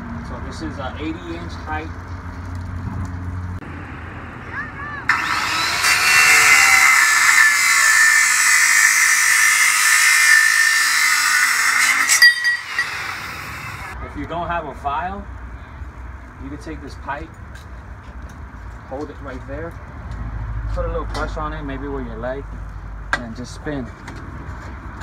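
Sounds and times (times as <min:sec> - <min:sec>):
circular saw cutting metal pipe: 0:05.1 - 0:14.0.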